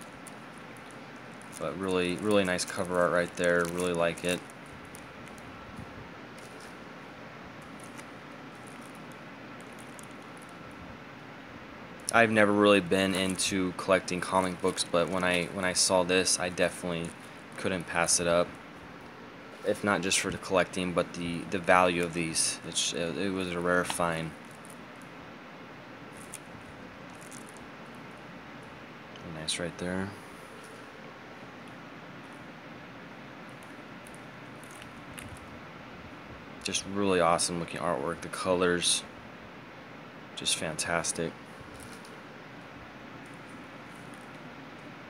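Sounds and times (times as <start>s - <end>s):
plastic bags crinkling: 0.0s - 7.0s, 7.6s - 10.8s, 12.0s - 25.1s, 26.0s - 28.7s, 33.4s - 35.5s
room hiss: 0.0s - 45.0s.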